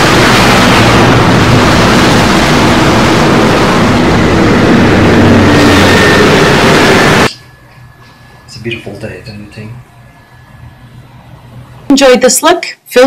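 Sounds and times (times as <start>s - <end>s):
rocket engine roar: 0.0s - 11.5s
low hum: 0.0s - 12.0s.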